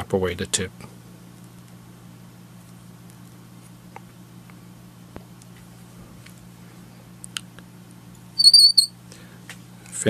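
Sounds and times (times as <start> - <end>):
high-pitched warbling squeak: 8.4 - 8.9.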